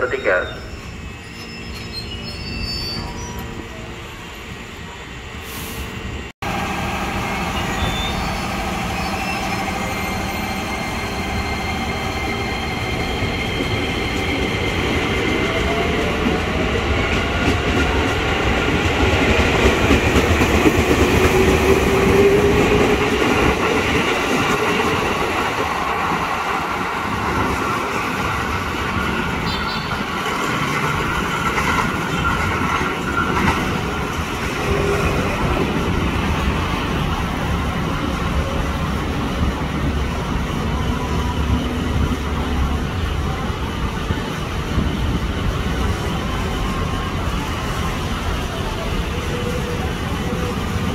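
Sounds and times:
electric train rumbling: 0.0s - 50.9s.

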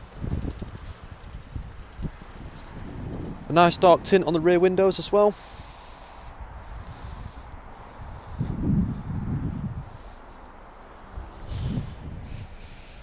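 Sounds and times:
faint steady background noise: 0.0s - 13.0s
wind rumbling on microphone: 0.0s - 13.0s.

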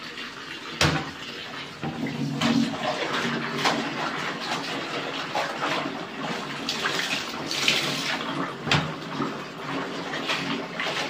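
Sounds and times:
water splashing: 0.8s - 9.3s
wet clothes sloshing in basin: 1.0s - 11.0s
water streaming off fabric: 6.7s - 8.2s.

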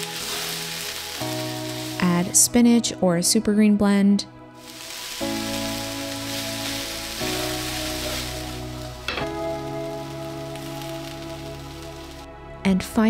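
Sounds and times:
vegetables sizzling in a pan: 0.0s - 2.5s, 4.6s - 12.3s
soft background music: 0.0s - 13.0s.

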